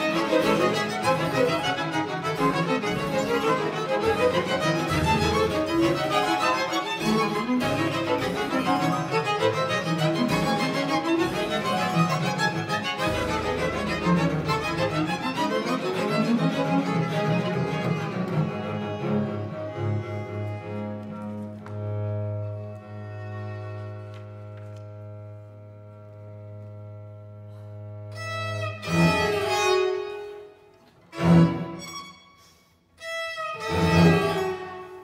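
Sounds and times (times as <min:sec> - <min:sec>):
string ensemble playing: 0:00.0 - 0:35.0.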